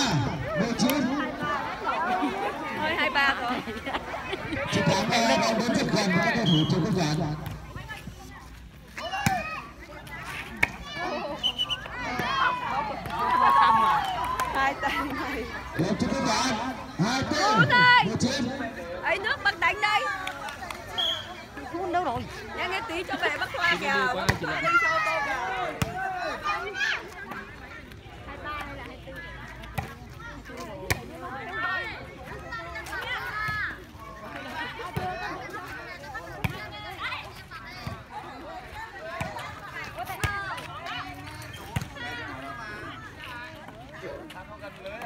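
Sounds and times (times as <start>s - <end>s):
people's voices: 0.0s - 45.0s.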